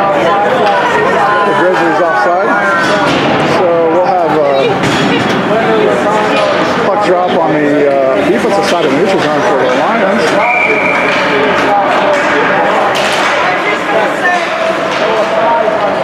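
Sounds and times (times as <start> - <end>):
people talking at once: 0.0 - 16.0.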